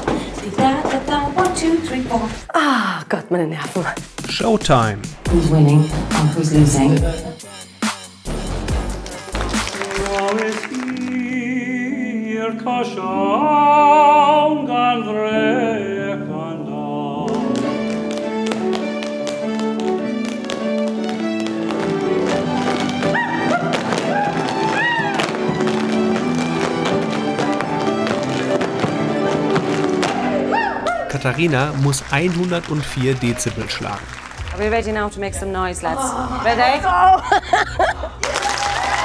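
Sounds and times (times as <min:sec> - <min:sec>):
dancers' shoes tapping on stage: 0:00.0 - 0:02.4, 0:17.3 - 0:30.4
man singing with vibrato: 0:09.8 - 0:17.8
folk dance tune ensemble: 0:17.3 - 0:32.5.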